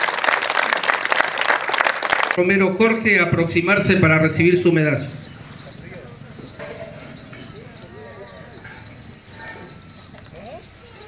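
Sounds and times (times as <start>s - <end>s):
high-pitched pulsing chirp: 3.6s - 11.0s
faint murmuring voices: 4.4s - 11.0s.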